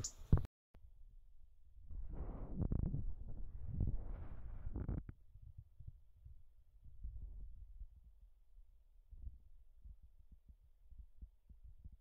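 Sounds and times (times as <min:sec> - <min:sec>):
faint low rumble: 0:00.4 - 0:12.0.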